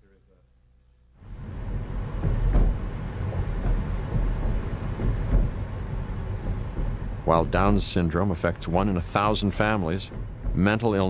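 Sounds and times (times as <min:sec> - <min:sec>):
car engine and road noise: 0:01.2 - 0:11.0
faint knocks: 0:01.6 - 0:11.0.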